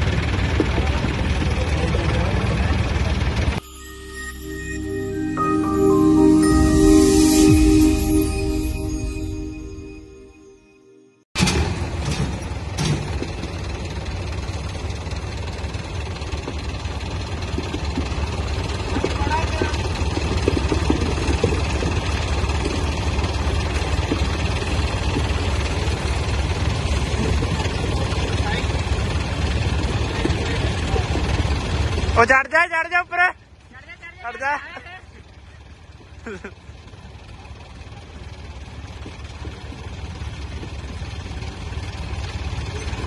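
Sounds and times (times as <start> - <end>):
tractor diesel engines rumbling: 11.9 - 32.3, 34.9 - 43.0.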